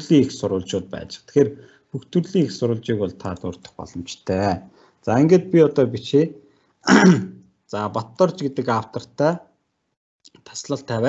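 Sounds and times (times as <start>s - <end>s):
person speaking: 0.0s - 9.4s, 10.3s - 11.0s
person clearing throat: 6.8s - 7.4s.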